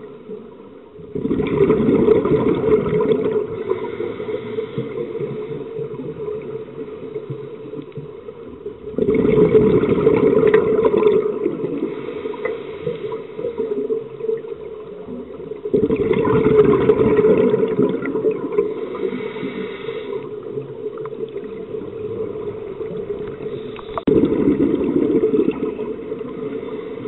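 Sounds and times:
low underwater hum: 0.0s - 27.0s
regulator bubbles underwater: 0.0s - 27.0s.

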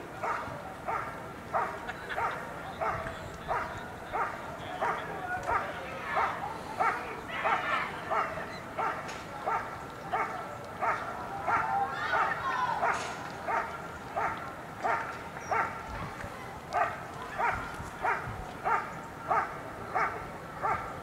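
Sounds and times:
dog barking steadily: 0.2s - 15.9s, 16.7s - 21.0s.

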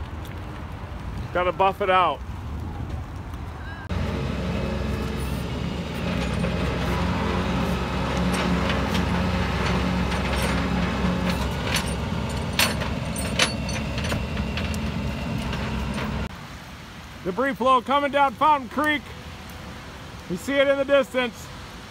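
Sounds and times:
truck engine idling: 3.8s - 16.3s.

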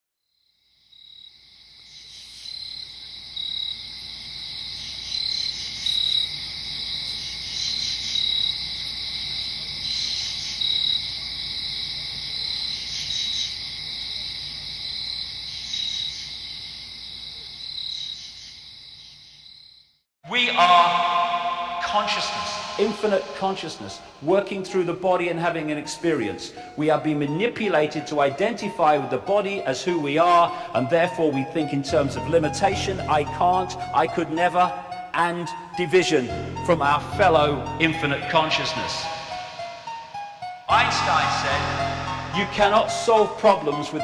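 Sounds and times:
crickets chirping: 0.3s - 20.0s, 39.0s - 40.6s.

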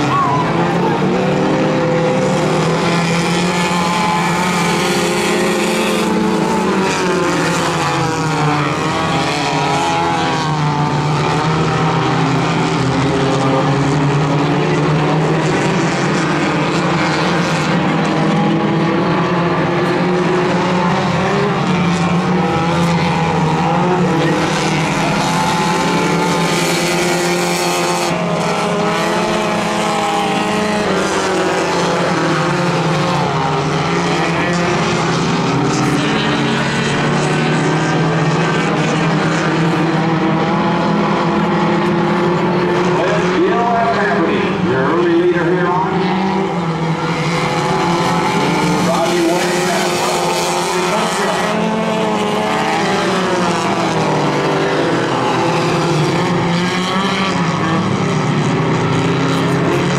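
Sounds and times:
race car engines: 0.0s - 59.9s.

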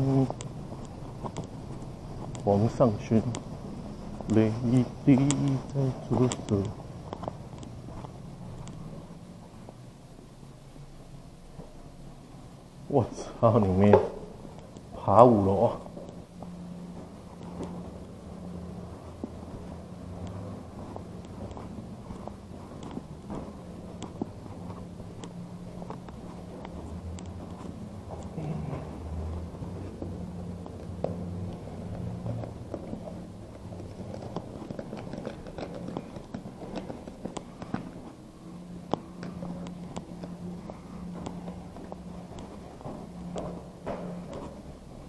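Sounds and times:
footsteps climbing stairs: 0.0s - 9.8s, 13.1s - 45.0s.

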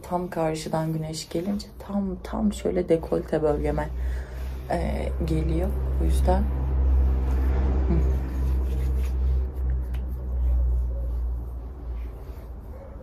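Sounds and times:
vehicle engine rumble: 0.0s - 13.0s.

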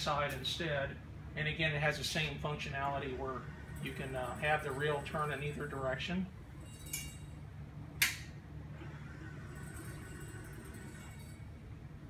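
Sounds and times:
steady low hum: 0.0s - 12.0s
sharp click: 8.0s - 8.3s.

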